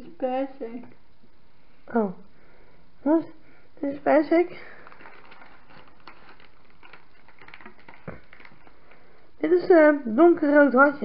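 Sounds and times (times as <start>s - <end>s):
steady low hiss: 0.0s - 11.0s
plastic packet rustling: 4.4s - 9.2s.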